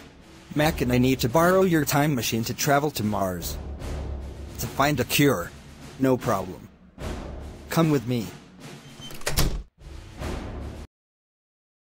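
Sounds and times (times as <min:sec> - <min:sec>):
background music: 0:00.0 - 0:10.9
door sound effect: 0:08.8 - 0:10.5.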